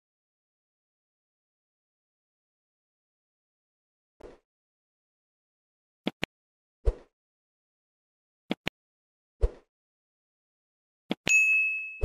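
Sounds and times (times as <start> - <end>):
notification bell ding: 11.3 - 12.0.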